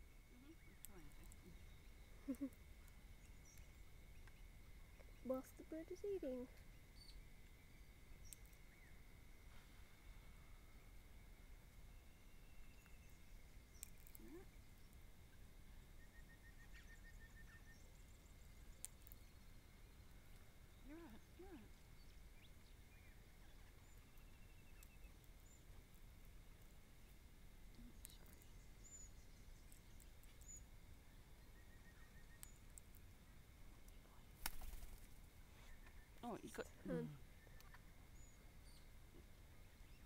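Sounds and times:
faint chirps: 0.0s - 26.0s, 26.6s - 40.0s
faint sharp clicks: 13.8s - 14.2s.

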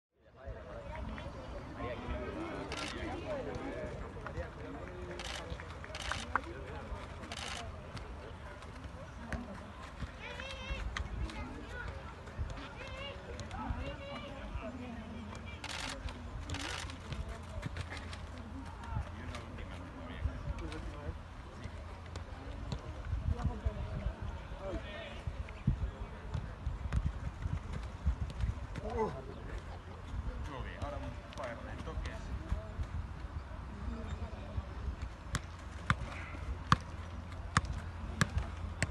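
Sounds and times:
wind rumble on microphone: 23.0s - 24.6s, 25.2s - 28.8s.

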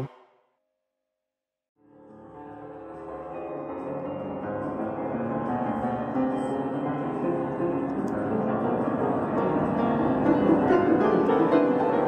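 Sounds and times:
piano music: 2.1s - 12.0s.

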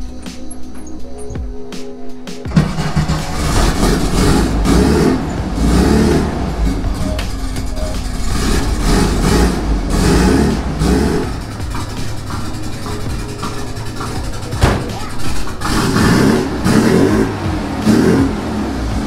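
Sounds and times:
car engine revving: 2.5s - 19.0s.

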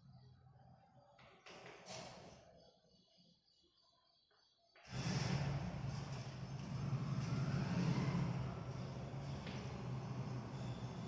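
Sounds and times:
low motor rumble: 5.0s - 11.0s.

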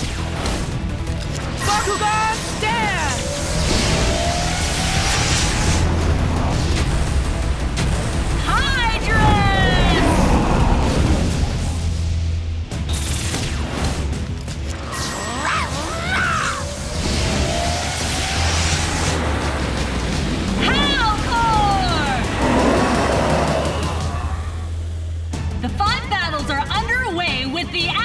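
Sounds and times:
dramatic music with steady bass: 0.0s - 28.0s
whooshing sound effects: 2.6s - 7.8s
gliding monster cries: 14.9s - 16.9s, 22.0s - 24.9s.

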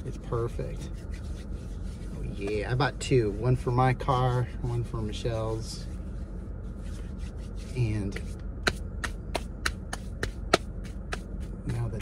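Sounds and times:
hands rubbing with sanitizer: 6.8s - 11.8s.

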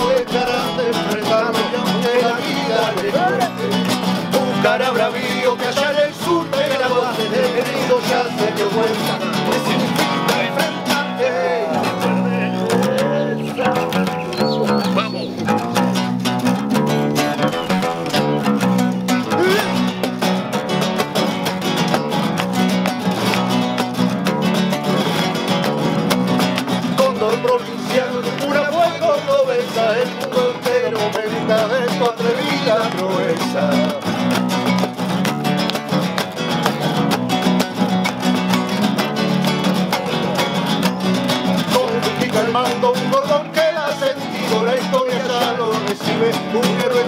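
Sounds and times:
man singing: 0.0s - 15.6s, 19.2s - 20.0s, 26.8s - 34.2s, 41.6s - 47.0s
acoustic guitar: 0.0s - 47.0s.

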